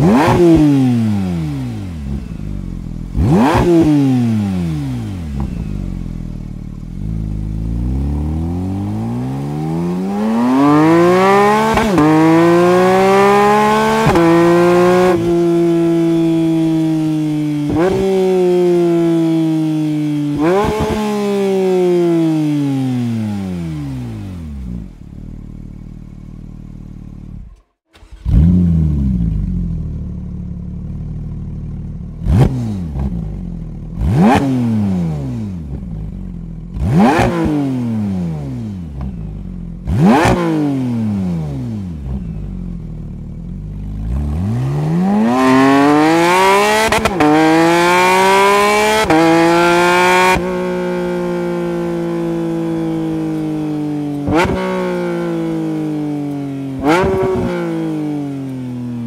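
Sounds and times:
car engine revving with sharp blips: 0:00.0 - 0:59.0.

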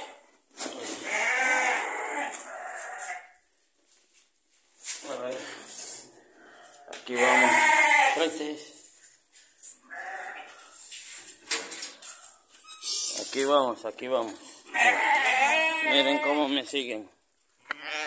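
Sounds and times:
ewes bleating: 0:01.0 - 0:03.4, 0:07.1 - 0:08.3, 0:09.8 - 0:10.6, 0:14.7 - 0:16.6, 0:17.7 - 0:18.0.

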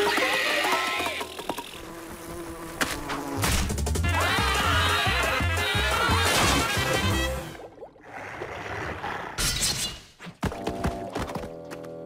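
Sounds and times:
cartoon bee buzzing: 0:00.1 - 0:07.4.

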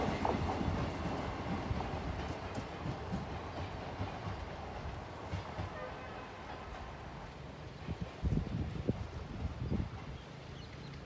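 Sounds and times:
train wheels rumbling: 0:00.0 - 0:11.0.

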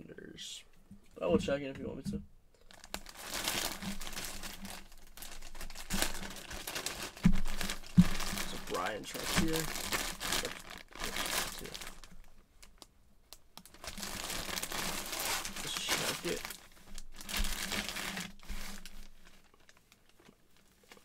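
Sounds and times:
plastic bag crinkling: 0:02.6 - 0:12.9, 0:13.6 - 0:21.0.

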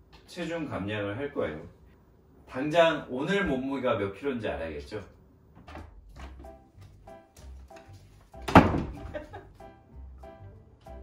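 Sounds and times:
door being shut: 0:05.6 - 0:06.5, 0:08.4 - 0:09.2
music with repeated notes: 0:06.4 - 0:11.0.

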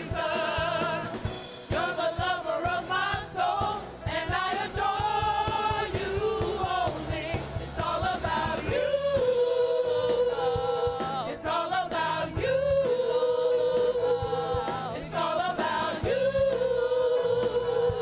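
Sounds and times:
gospel choir singing: 0:00.0 - 0:18.0.

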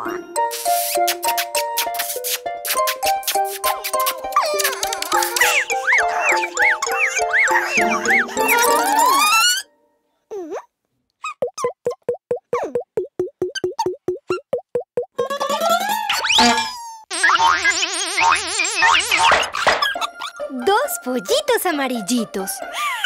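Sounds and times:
children's music with rising glides: 0:03.0 - 0:09.7.

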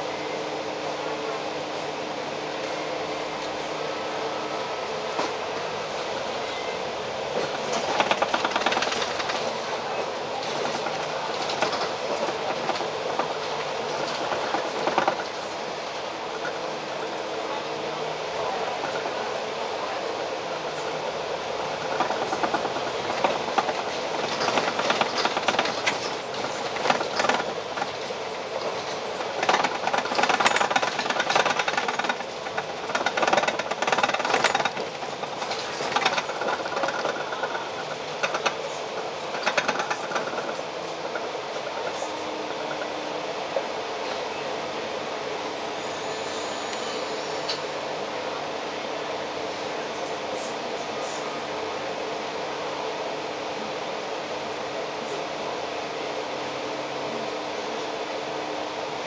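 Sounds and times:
bus engine running: 0:00.0 - 0:59.0.

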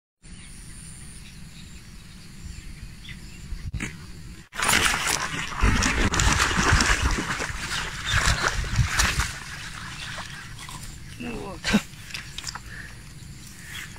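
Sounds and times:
quiet outdoor ambience: 0:00.3 - 0:13.9
fish thrashing and splashing: 0:04.5 - 0:13.0.

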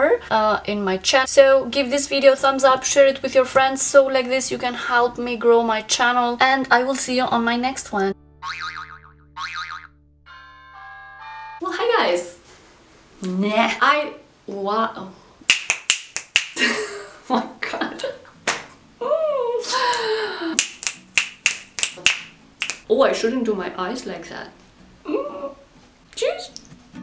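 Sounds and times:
comic boing sound effect: 0:08.4 - 0:10.6
finger snaps: 0:15.5 - 0:16.6, 0:19.9 - 0:22.9.

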